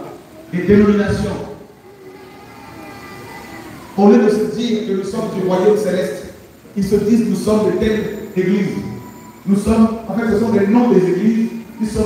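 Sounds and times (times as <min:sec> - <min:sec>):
faint crowd voices: 0:00.0 - 0:12.0
steady background noise: 0:00.0 - 0:12.0.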